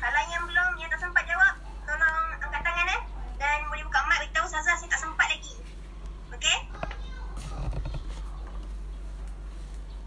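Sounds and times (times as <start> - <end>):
child speaking high-pitched: 6.5 - 8.3.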